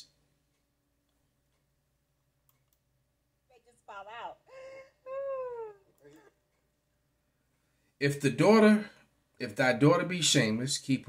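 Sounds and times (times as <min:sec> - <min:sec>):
faint clicks: 0:02.4 - 0:02.9.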